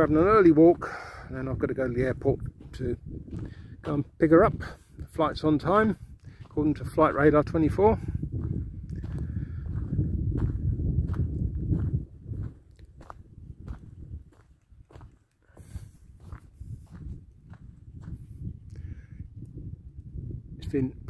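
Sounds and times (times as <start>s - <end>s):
footsteps crunching on stony track: 0.0s - 18.6s
wind buffeting microphone: 0.0s - 21.0s.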